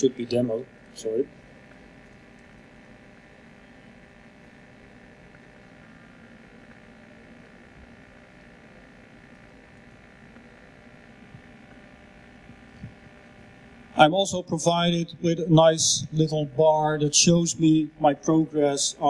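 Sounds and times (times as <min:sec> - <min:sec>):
sound system electrical hum: 0:00.0 - 0:19.0.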